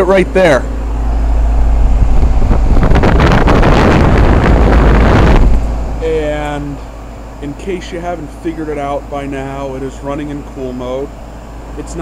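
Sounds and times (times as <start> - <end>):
heat pump fan blowing air: 0.0 - 12.0
wind buffeting microphone: 1.0 - 6.0.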